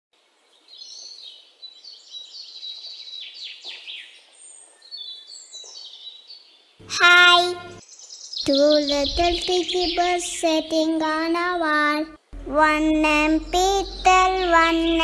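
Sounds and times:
small birds chirping: 0.3s - 15.0s.

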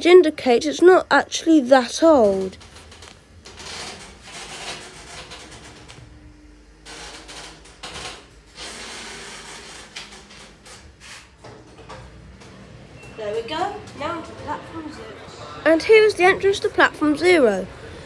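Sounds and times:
lift running hum: 0.6s - 18.0s.

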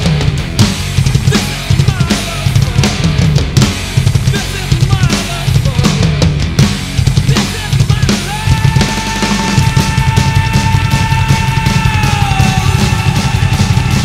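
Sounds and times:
drum kit played hard: 0.0s - 14.0s
heavy rock recording: 0.0s - 14.0s.

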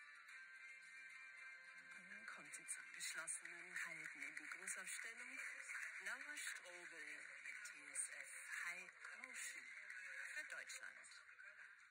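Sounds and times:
faint broadcast speech: 0.0s - 11.9s.

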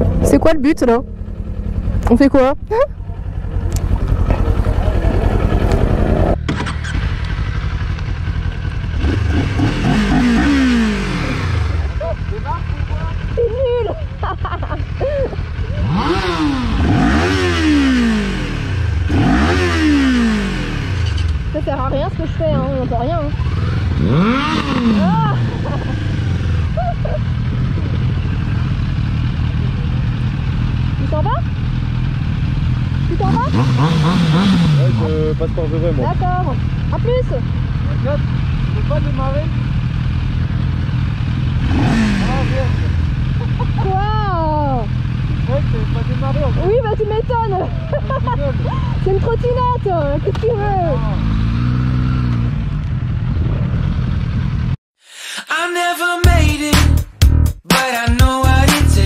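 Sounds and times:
motorcycle engine idling: 0.0s - 54.8s
motorcycle throttle blips: 0.0s - 54.8s.

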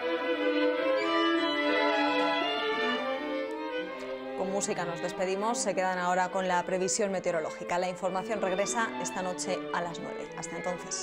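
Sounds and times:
string quartet playing sustained chords: 0.0s - 11.0s.

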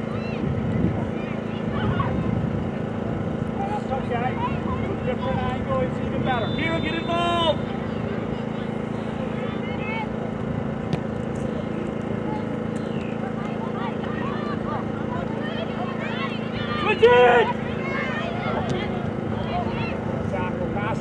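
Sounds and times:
wind: 0.0s - 21.0s
distant players shouting: 3.7s - 11.1s, 11.9s - 20.4s.

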